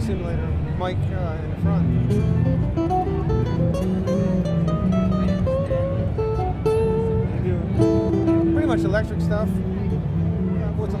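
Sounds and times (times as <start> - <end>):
acoustic guitar riff: 1.6 - 11.0.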